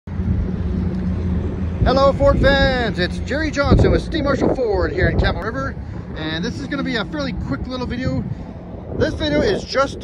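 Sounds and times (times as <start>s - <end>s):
low outdoor rumble: 0.1s - 10.0s
man talking: 1.8s - 10.0s.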